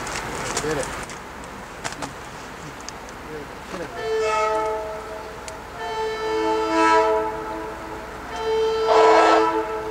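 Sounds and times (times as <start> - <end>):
rain hiss: 0.0 - 9.9
train horn blast: 3.9 - 9.9.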